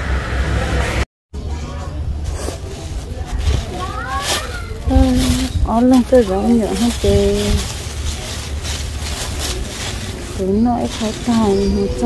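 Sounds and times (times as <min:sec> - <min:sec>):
plastic bag crinkling: 0:02.6 - 0:12.0.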